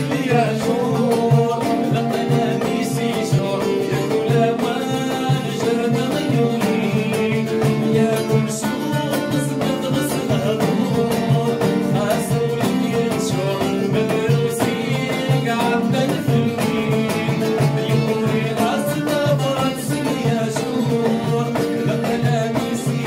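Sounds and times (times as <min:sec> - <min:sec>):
frame drum beating: 0:00.0 - 0:23.0
man singing: 0:00.0 - 0:23.0
plucked lute: 0:00.0 - 0:23.0.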